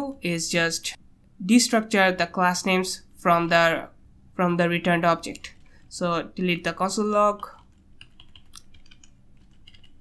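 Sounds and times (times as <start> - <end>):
computer keyboard typing: 7.4 - 10.0.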